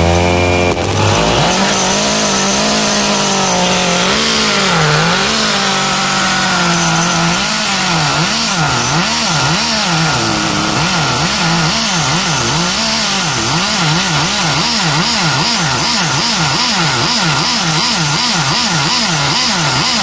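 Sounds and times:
rc car engine revving: 0.0s - 20.0s.

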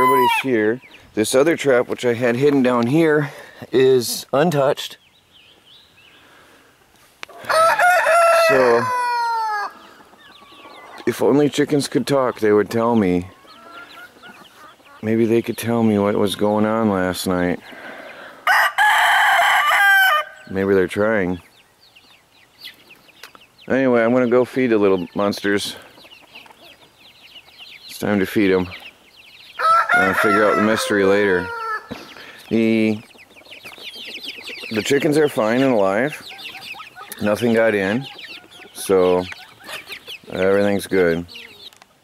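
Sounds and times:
rooster crowing: 0.0s - 0.5s, 7.3s - 9.8s, 18.4s - 20.5s, 29.6s - 31.9s
chickens peeping and chirping: 0.0s - 42.0s
faint bird chirps: 31.8s - 41.8s.

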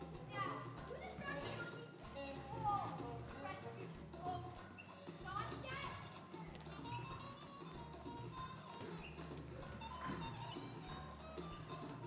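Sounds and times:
faint music: 0.0s - 12.0s
children's voices: 0.2s - 7.0s.

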